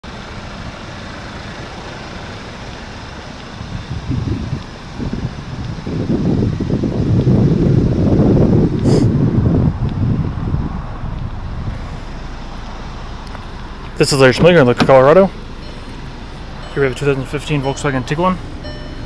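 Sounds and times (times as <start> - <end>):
outdoor background noise: 0.0 - 19.0
wind buffeting microphone: 3.6 - 14.9.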